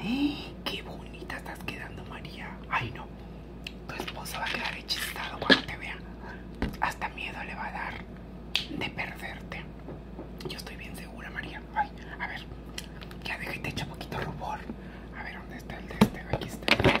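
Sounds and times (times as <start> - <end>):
woman whispering: 0.0 - 3.1, 3.9 - 6.1, 6.8 - 8.1, 8.7 - 9.7, 10.4 - 12.5, 13.2 - 16.7.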